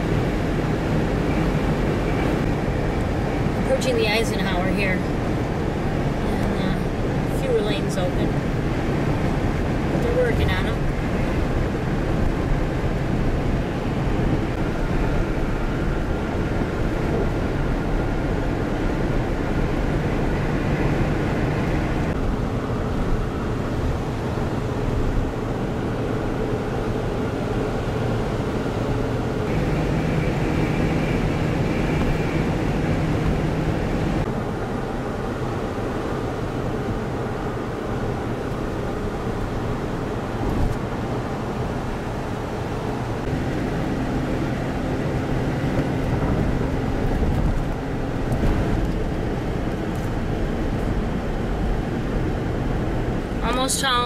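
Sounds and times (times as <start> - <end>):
car road noise inside cabin: 0.0 - 54.0.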